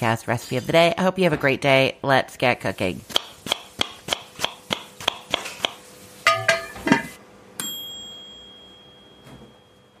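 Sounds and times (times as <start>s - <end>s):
bell ding ringing: 7.6s - 10.0s.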